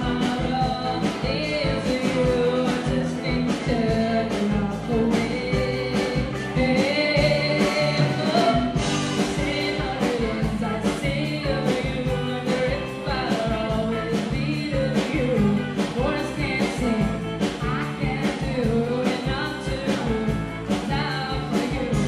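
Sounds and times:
acoustic guitar: 0.0s - 22.0s
electric bass: 0.0s - 22.0s
steady drum beat: 0.0s - 22.0s
woman singing: 0.0s - 22.0s.

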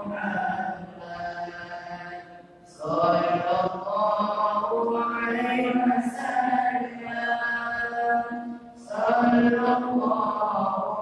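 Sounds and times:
men chanting: 0.0s - 11.0s.

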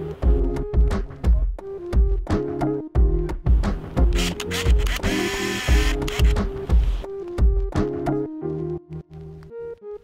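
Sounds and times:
camera film advance whirr: 4.2s - 6.4s.

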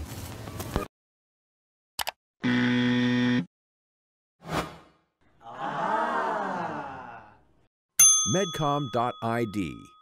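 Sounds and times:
electronic buzzer tone: 2.4s - 3.5s.

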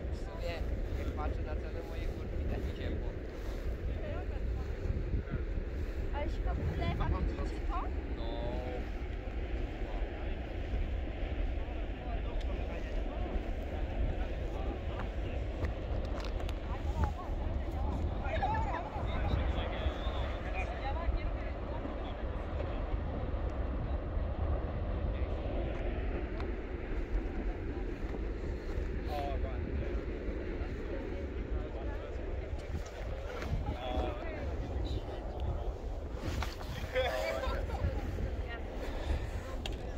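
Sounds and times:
faint voices: 0.0s - 39.9s
wind rumbling on microphone: 0.0s - 39.9s.

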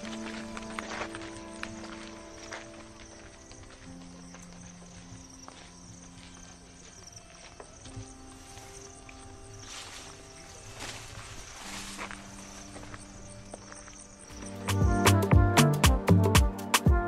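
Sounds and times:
sustained synthesizer chords: 12.1s - 17.0s.

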